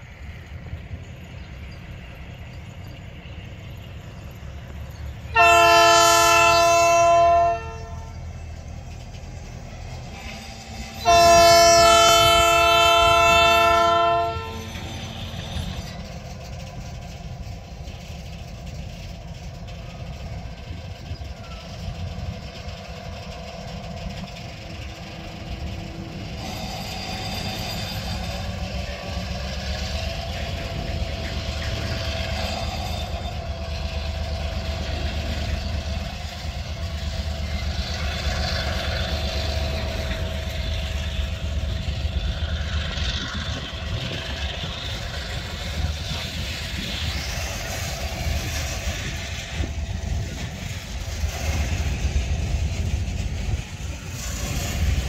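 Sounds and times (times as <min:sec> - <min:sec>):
locomotive diesel engine running: 0:00.0 - 0:55.0
locomotive chime air horn: 0:05.3 - 0:08.4, 0:10.6 - 0:15.2.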